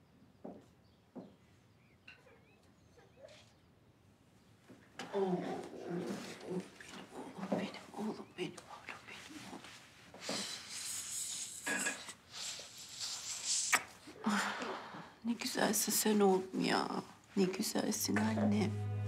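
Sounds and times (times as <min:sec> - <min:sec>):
kisses and breaths: 0:12.4 - 0:14.0.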